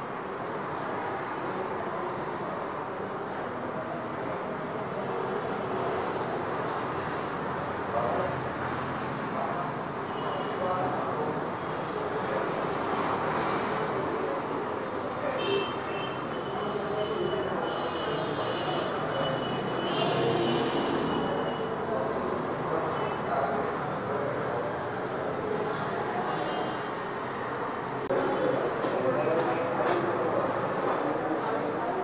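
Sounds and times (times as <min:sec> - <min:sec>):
faint indistinct voices: 0:00.0 - 0:32.0
steady background noise: 0:00.0 - 0:32.0.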